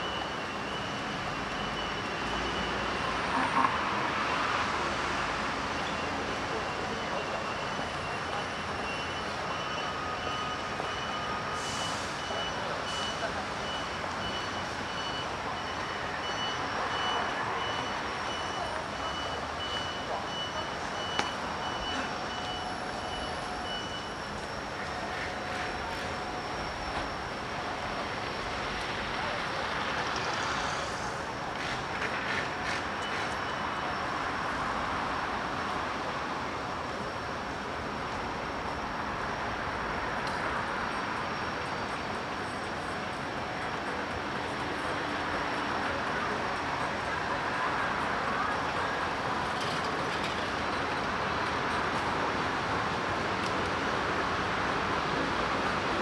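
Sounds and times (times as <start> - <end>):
passing cars and buses: 0.0 - 56.0
high electronic beep: 6.7 - 28.0.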